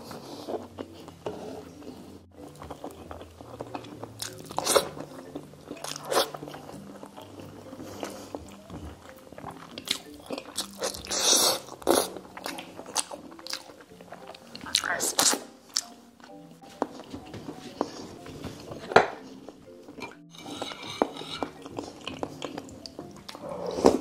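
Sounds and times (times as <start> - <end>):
wet chewing mouth noises: 0.0 - 20.3, 21.0 - 24.0
soft background music: 0.0 - 24.0.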